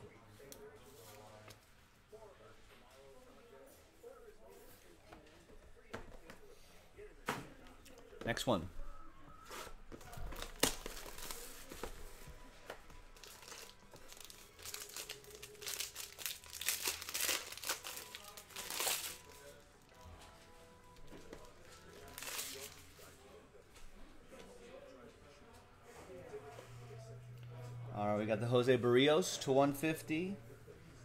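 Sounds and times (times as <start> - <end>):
plastic wrapping tearing and crinkling: 10.3 - 11.9, 13.1 - 19.6, 21.9 - 22.8.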